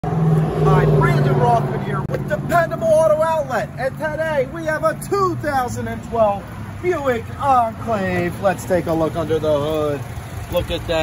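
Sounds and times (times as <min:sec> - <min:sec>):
car engine idling hum: 0:00.0 - 0:11.0
man talking: 0:00.6 - 0:11.0.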